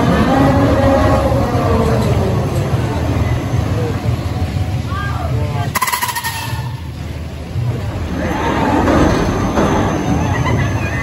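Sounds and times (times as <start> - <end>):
ride low rumble: 0.0 - 11.0.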